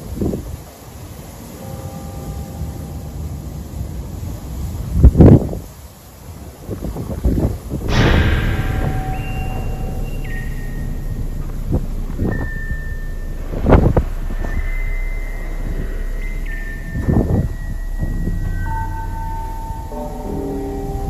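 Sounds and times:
wind buffeting microphone: 4.2 - 20.0
steady low rumble: 7.9 - 21.0.

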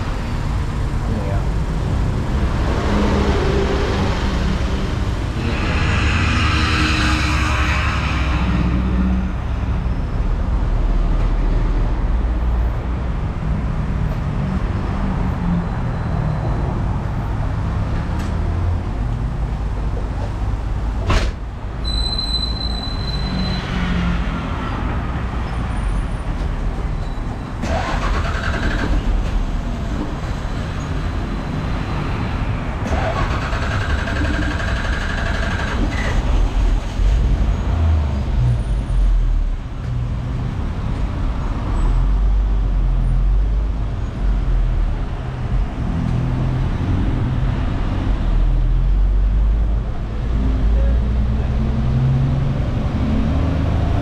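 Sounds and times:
bus engine rumbling: 0.0 - 54.0
bus engine whine: 25.5 - 39.9.

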